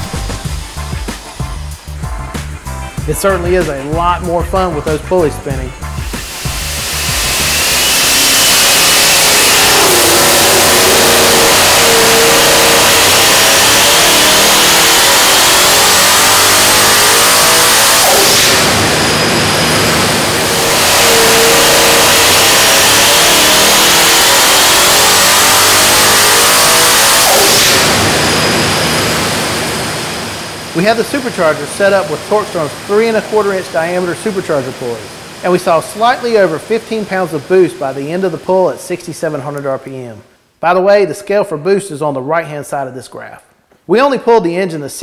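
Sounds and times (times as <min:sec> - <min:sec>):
high supercharger whine: 0:00.0 - 0:39.9
engine revving at full throttle: 0:05.8 - 0:38.0.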